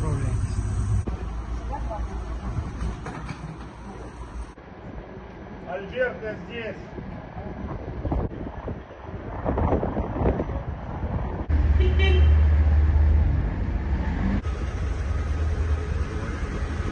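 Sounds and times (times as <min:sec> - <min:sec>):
steady low rumble: 0:00.0 - 0:03.0, 0:12.7 - 0:16.9
traffic noise: 0:00.0 - 0:16.9.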